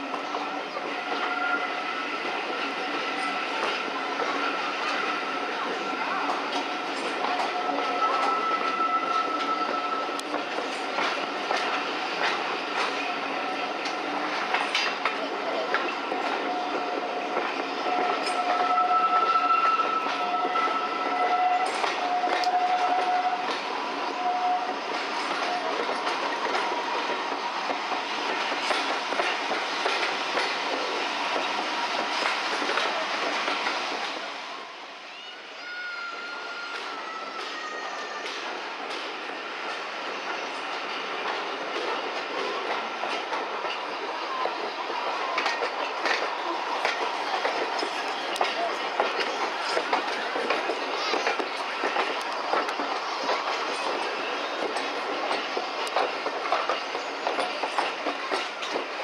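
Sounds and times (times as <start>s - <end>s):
train wheels clicking over rail joints: 2.2s - 34.2s, 38.2s - 59.0s.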